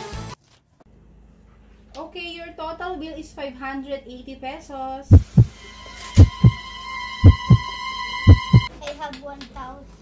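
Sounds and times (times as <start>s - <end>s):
heartbeat double thumps: 5.1s - 5.5s, 6.2s - 6.6s, 7.2s - 7.6s, 8.3s - 8.7s.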